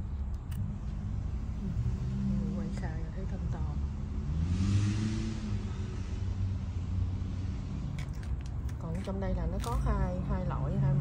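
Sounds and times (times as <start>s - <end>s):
motor vehicle passing: 0.0s - 11.0s
road traffic rumble: 0.0s - 11.0s.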